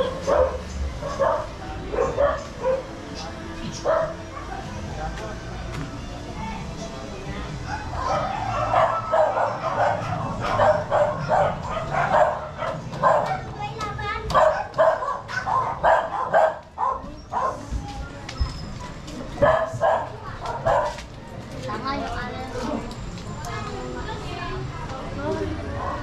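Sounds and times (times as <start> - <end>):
dog barking: 0.0 - 2.9, 3.8 - 4.7, 7.6 - 13.5, 14.3 - 17.7, 19.4 - 21.0
people's voices: 0.0 - 26.0.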